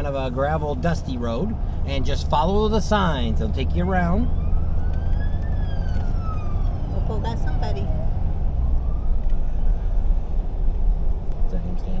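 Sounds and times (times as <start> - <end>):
vehicle driving rumble: 0.0 - 12.0
siren wailing: 4.0 - 10.4.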